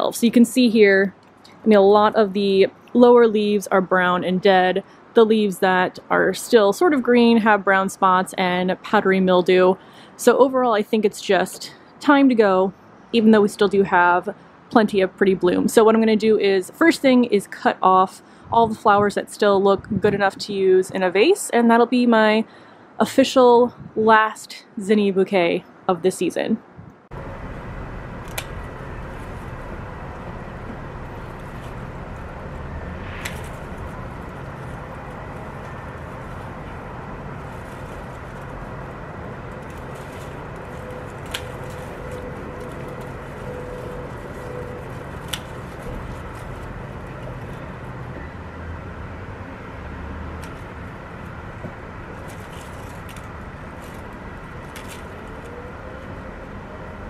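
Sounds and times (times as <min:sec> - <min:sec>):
city traffic hum: 0:00.0 - 0:57.0.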